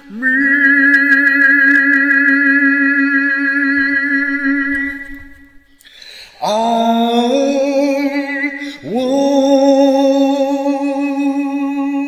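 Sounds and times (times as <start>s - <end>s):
person singing long note: 0.0s - 5.6s
intake of breath: 5.6s - 6.4s.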